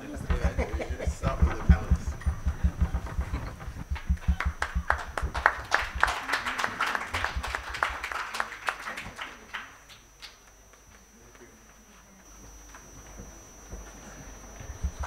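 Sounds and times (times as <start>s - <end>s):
crowd applauding: 0.0s - 10.9s.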